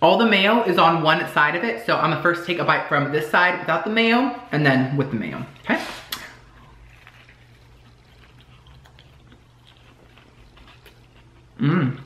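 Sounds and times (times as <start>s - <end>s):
low steady hum: 0.0s - 12.0s
chewing with crunches: 5.4s - 12.0s.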